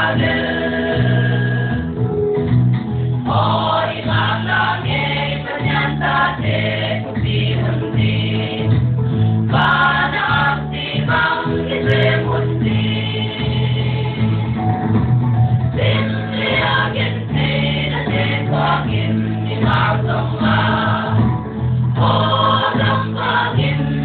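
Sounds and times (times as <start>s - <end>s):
choir singing gospel song: 0.0s - 2.0s, 3.2s - 14.6s, 15.8s - 24.0s.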